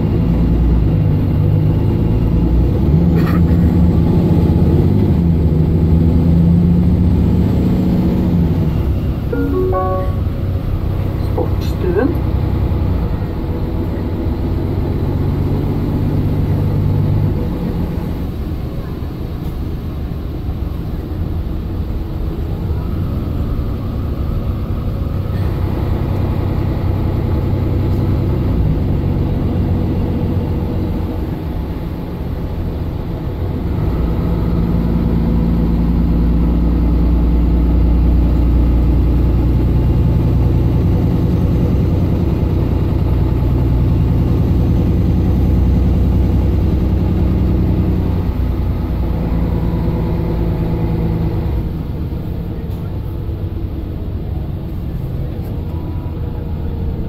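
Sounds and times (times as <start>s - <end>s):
bus diesel engine pulling under load: 0.0s - 57.0s.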